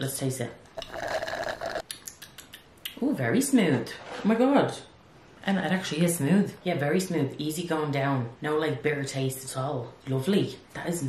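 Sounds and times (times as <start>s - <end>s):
slurping through a straw: 0.8s - 1.8s.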